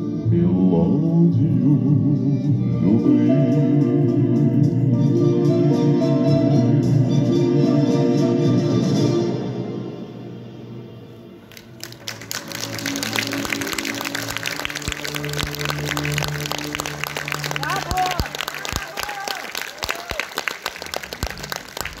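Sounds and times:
concert music: 0.0 - 22.0
audience applauding: 11.5 - 22.0.

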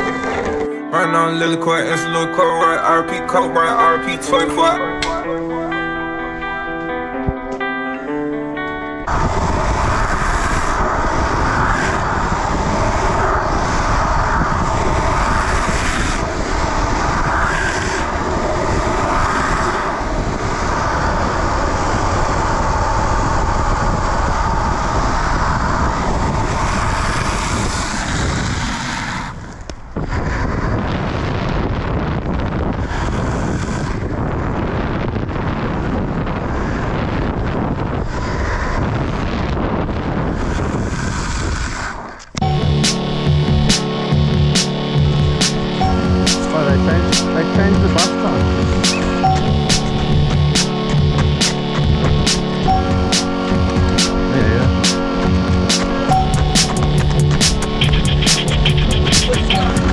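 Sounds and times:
skateboard wheels rolling on asphalt: 0.0 - 0.8, 8.6 - 42.4
wind noise on microphone: 0.0 - 0.9, 4.3 - 59.9
guitar music: 0.0 - 11.3, 42.4 - 59.9.

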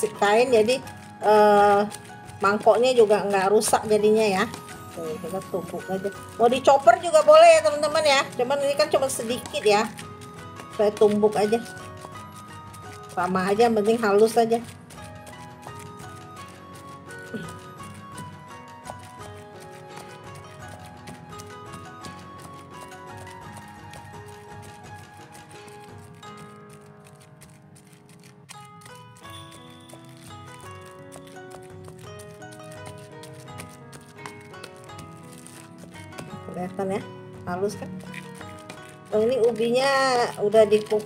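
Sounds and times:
instrumental music: 0.0 - 41.0.

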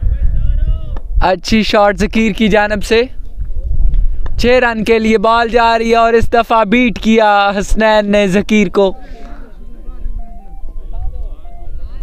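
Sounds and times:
wind rumble on microphone: 0.0 - 7.8
faint melody: 8.5 - 12.0
faint distant voices: 8.7 - 12.0.

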